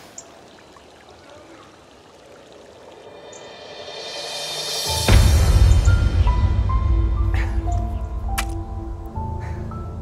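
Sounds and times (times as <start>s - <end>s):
sustained film score music: 2.9s - 10.0s.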